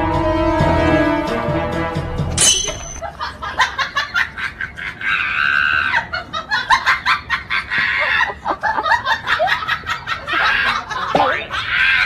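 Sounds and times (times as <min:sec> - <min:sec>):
high-pitched laughter: 0:03.0 - 0:12.0.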